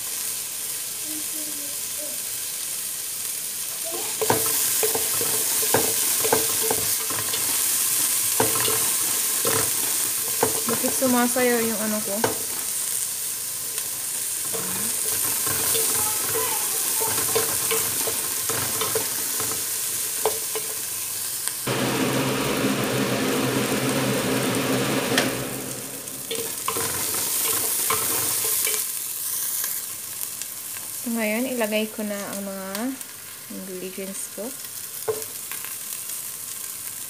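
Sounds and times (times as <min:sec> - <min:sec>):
vegetables sizzling in hot oil: 0:00.0 - 0:37.0
wooden spatula scraping pot: 0:04.2 - 0:11.4, 0:14.4 - 0:20.8, 0:26.2 - 0:28.8
low hum: 0:21.7 - 0:26.8.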